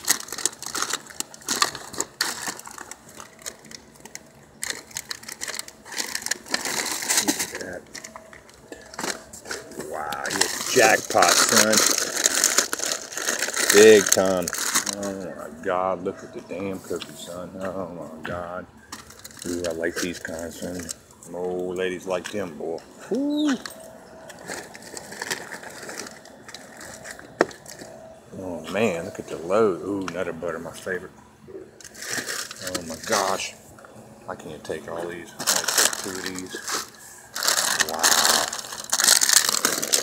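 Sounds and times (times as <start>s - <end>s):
packages and boxes rustling: 0.0s - 17.8s, 18.4s - 30.2s, 31.7s - 33.6s, 34.4s - 40.0s.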